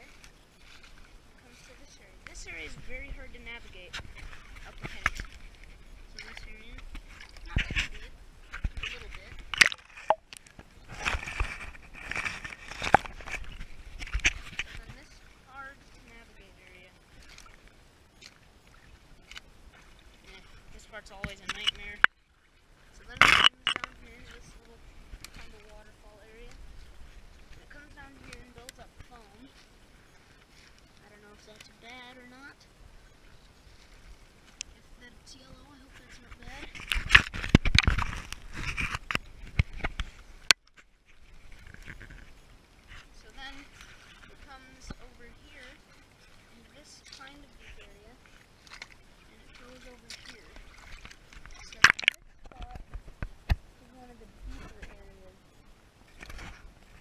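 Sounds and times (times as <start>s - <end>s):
footsteps splashing through creek: 0.0s - 32.0s, 32.9s - 53.7s.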